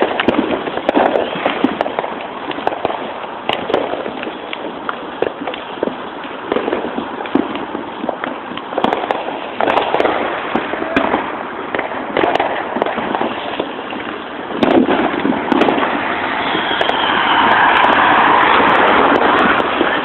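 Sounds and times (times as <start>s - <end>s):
continuous crackling: 0.0s - 20.0s
fireworks popping and banging: 0.0s - 20.0s.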